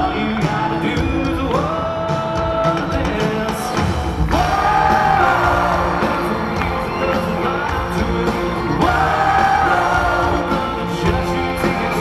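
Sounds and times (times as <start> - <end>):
live band playing: 0.0 - 12.0.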